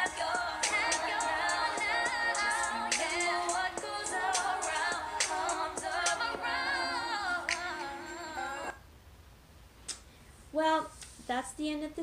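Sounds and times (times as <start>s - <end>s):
woman singing: 0.0s - 8.8s
snap-like percussion: 5.2s - 5.5s.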